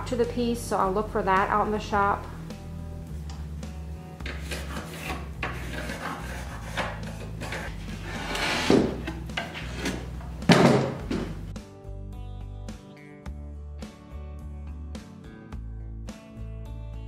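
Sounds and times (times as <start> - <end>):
quiet background music: 0.0 - 17.0
wood knocking on wood: 8.6 - 11.4.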